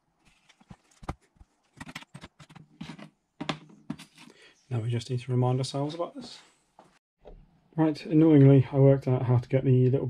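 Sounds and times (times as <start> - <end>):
handling knocks and scrapes: 0.2 - 4.3.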